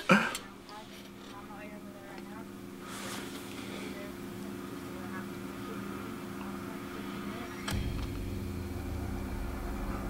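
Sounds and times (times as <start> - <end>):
low droning hum: 0.0 - 10.0
sudden sharp hit: 7.7 - 10.0
deep sustained rumble: 7.8 - 10.0.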